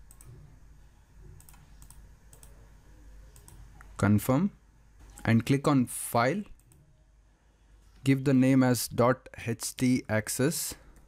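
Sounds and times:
computer mouse clicks: 0.0 - 0.4, 1.4 - 2.6, 3.3 - 3.9
low room hum: 0.0 - 11.0.

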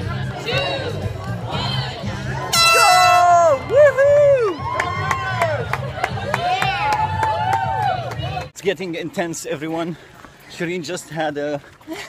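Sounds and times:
runners whooping and cheering: 2.2 - 8.5
air horn blast: 2.5 - 3.4.

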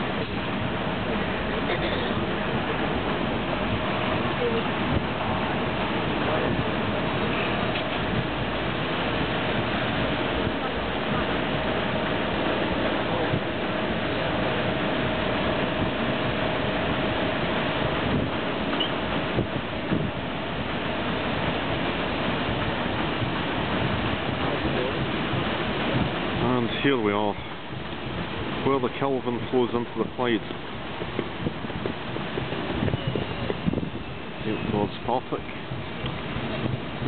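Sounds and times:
water washing from paddles: 0.0 - 37.0
wind on microphone: 0.0 - 37.0.

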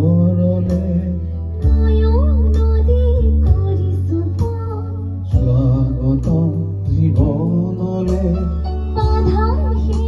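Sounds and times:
man singing into microphone: 0.0 - 1.4, 5.3 - 9.4
instrumental backing with bass: 0.0 - 10.0.

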